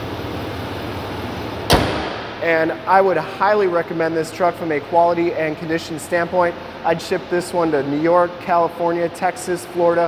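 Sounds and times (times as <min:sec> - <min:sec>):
diesel engine idling: 0:00.0 - 0:10.0
hood slammed shut: 0:01.6 - 0:02.8.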